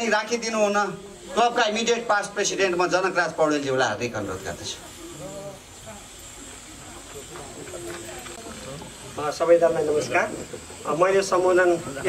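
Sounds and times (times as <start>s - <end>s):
faint voices talking: 0.0s - 12.0s
steady high-pitched hiss: 0.0s - 12.0s.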